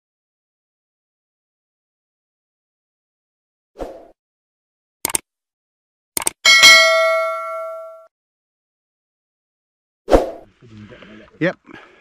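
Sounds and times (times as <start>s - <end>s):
mouse double click: 5.0s - 5.2s, 6.2s - 6.4s
notification bell ding: 6.5s - 8.1s.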